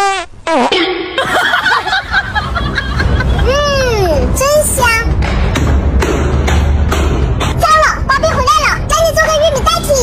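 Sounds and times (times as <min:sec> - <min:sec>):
background music: 0:00.7 - 0:10.0
laughter: 0:01.2 - 0:03.5.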